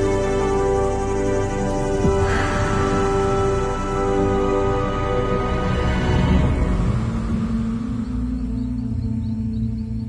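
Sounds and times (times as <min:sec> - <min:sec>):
dark ambient film music: 0:00.0 - 0:10.0
low held drone: 0:00.0 - 0:10.0
deep rumble: 0:01.8 - 0:10.0.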